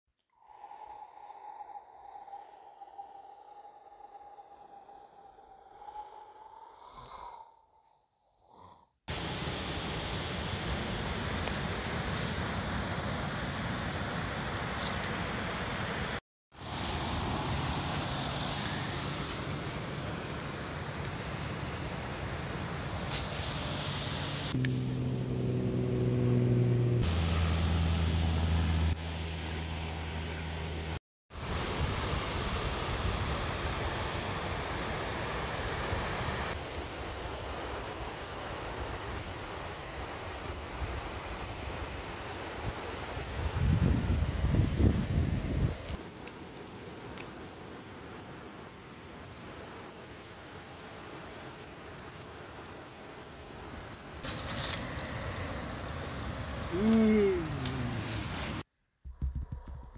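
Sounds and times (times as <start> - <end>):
low engine-like hum: 24.2 - 31.0
wind rushing on microphone: 31.4 - 46.0.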